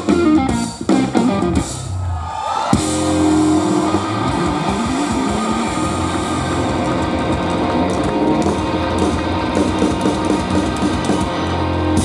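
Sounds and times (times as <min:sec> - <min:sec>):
electric guitar: 0:00.0 - 0:01.8, 0:02.8 - 0:12.0
bass guitar: 0:00.0 - 0:02.1, 0:02.8 - 0:12.0.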